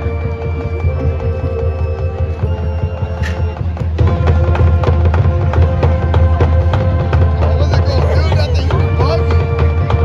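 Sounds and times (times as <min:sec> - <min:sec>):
wind instruments holding chords: 0:00.0 - 0:10.0.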